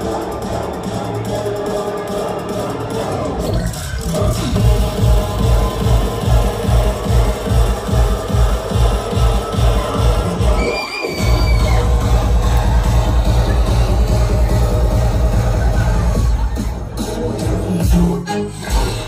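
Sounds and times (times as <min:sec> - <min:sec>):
dubstep bass music: 0:00.0 - 0:19.0.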